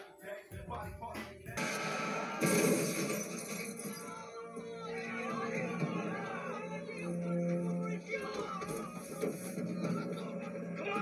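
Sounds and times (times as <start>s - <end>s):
background music: 0.0s - 11.0s
noisy action sound: 1.2s - 4.3s
voices: 3.8s - 11.0s.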